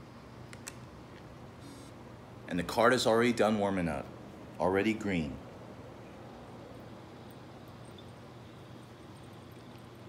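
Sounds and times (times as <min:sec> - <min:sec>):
faint low hum: 0:00.0 - 0:10.0
light clicks of caps: 0:00.5 - 0:01.3.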